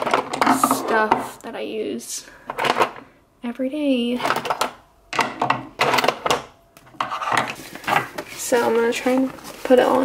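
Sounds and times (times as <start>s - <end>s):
makeup items clattering on wood: 0.0s - 1.3s, 4.2s - 10.0s.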